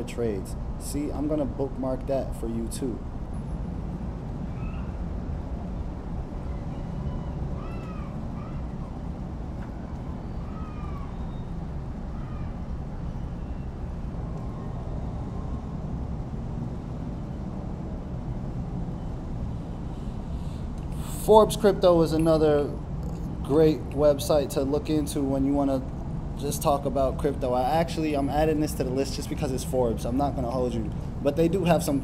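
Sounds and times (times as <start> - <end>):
low background rumble: 0.0 - 32.0
faint rising and falling calls: 4.4 - 5.0, 6.3 - 15.7.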